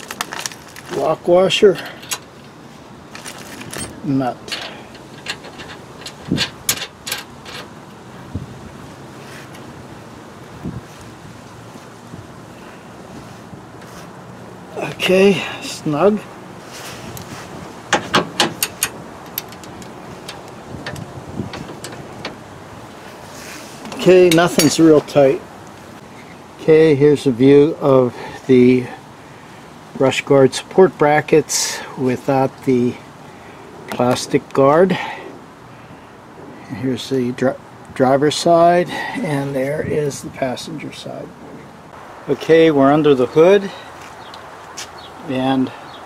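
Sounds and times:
steady background hiss: 0:00.0 - 0:46.0
metal lock washer clicks: 0:17.9 - 0:22.4.

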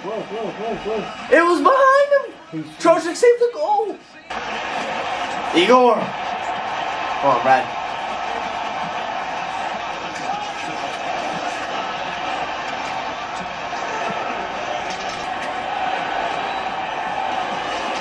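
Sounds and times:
sports commentary: 0:00.0 - 0:12.4
arena crowd noise: 0:00.0 - 0:18.0.

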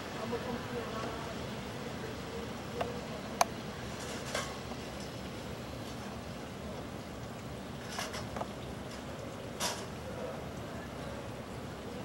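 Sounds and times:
city street background noise: 0:00.0 - 0:12.0.

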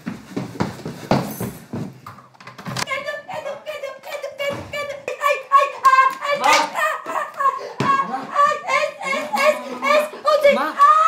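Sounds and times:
sharp hand claps: 0:05.8 - 0:07.5.

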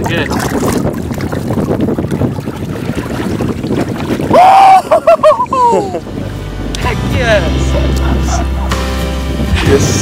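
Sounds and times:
water sloshing: 0:00.0 - 0:09.3
wind buffeting microphone: 0:00.0 - 0:10.0
whooping shout of joy: 0:04.3 - 0:06.0.

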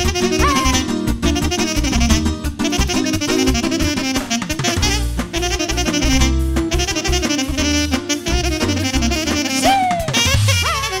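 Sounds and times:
saxophone fast melodic runs: 0:00.0 - 0:11.0
folk dance band beat: 0:00.2 - 0:01.4, 0:09.6 - 0:10.6.

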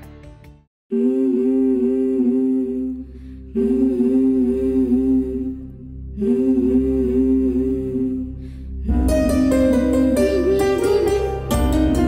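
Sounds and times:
low steady drone: 0:00.9 - 0:11.6
voices humming in harmony: 0:00.9 - 0:12.0.

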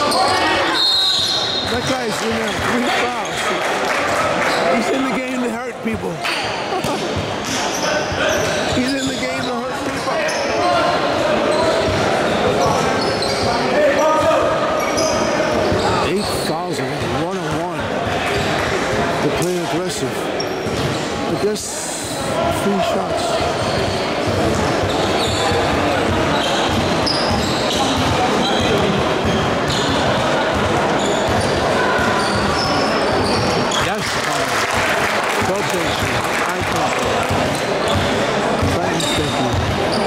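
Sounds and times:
people chattering: 0:00.0 - 0:40.0.

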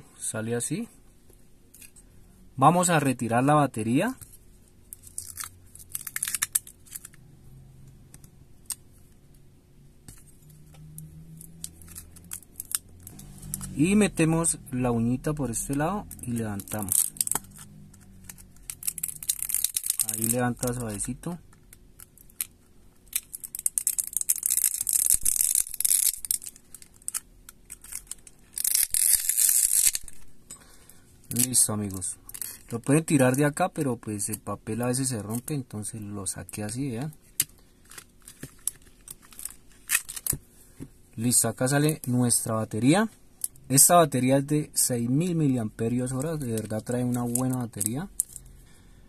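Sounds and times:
adhesive strip crackling and tearing: 0:05.0 - 0:07.2, 0:11.4 - 0:13.8, 0:15.6 - 0:20.9, 0:23.1 - 0:30.3, 0:37.4 - 0:40.4.

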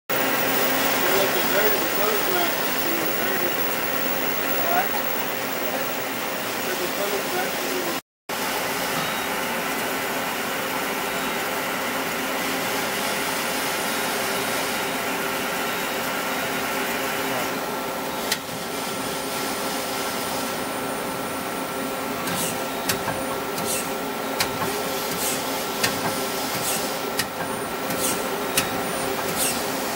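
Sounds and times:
machine mechanical hum: 0:00.1 - 0:29.9.

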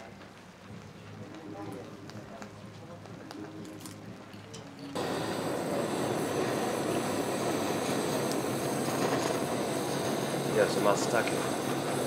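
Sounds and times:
food sizzling on a grill: 0:05.0 - 0:12.0.

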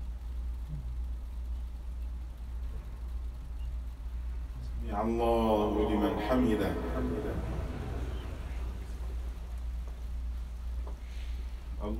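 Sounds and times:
low background hum: 0:00.0 - 0:11.9
man chanting recitation: 0:04.7 - 0:09.3.

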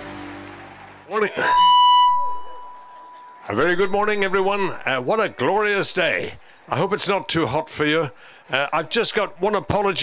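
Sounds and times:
electronic beep: 0:01.4 - 0:04.4.

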